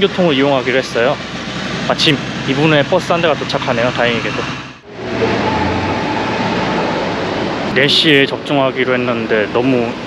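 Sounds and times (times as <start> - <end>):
vehicle running: 0.0 - 10.0.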